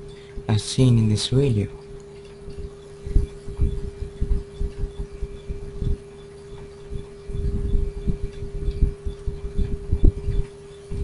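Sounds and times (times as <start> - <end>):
steady hum: 0.0 - 11.0
low thumps and rumbles: 2.5 - 11.0.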